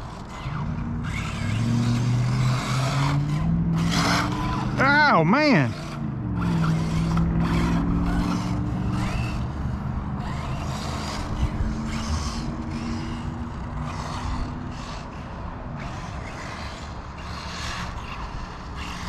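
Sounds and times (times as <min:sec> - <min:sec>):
rc car motor hum: 0:00.0 - 0:19.0.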